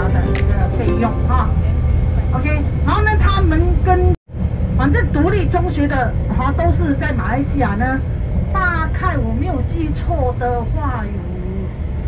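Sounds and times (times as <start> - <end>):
background music: 0.0 - 2.0.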